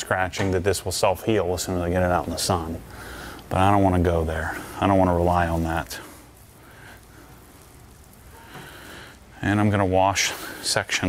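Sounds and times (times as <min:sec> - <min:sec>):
low room hum: 0:00.0 - 0:11.0
towel wiping car paint: 0:04.0 - 0:08.5.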